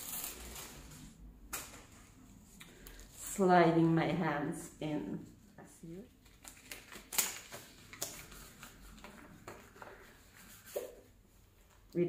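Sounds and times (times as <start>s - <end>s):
latex glove rubbing and rustling: 7.6s - 11.9s.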